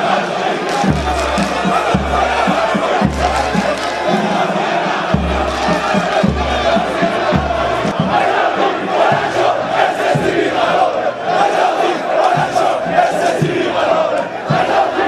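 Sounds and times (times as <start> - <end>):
crowd of men chanting: 0.0 - 15.0.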